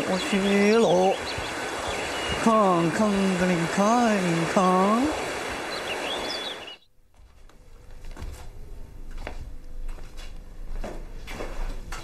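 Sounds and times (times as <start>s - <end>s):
outdoor background noise: 0.0s - 12.0s
faint bird chirps: 0.2s - 2.5s.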